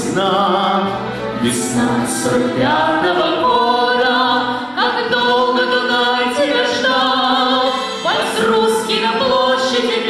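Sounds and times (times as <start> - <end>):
woman and man singing duet: 0.0 - 10.0.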